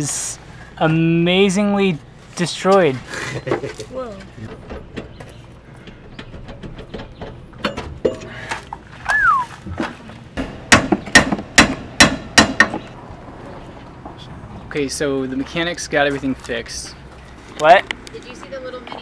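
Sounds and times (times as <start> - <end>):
falling whistle-like tone: 9.1 - 9.5
sharp metallic knocks: 10.4 - 12.9.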